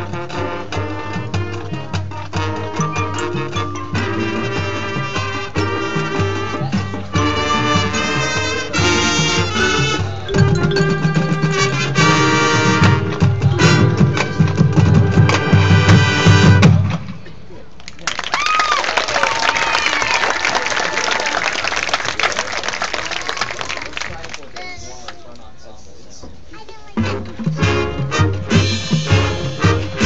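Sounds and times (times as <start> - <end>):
marching band playing: 0.0 - 17.1, 27.0 - 30.0
heavy low drum hits: 10.1 - 17.1
crowd applauding and cheering: 17.8 - 24.7.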